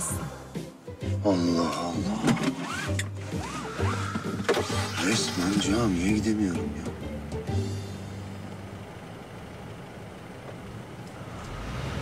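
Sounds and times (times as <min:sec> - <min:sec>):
car engine idling: 0:03.1 - 0:12.0.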